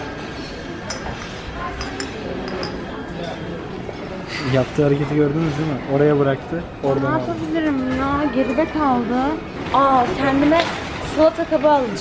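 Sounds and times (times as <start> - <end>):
murmur of voices: 0.0 - 12.0
glasses clinking: 0.3 - 3.6.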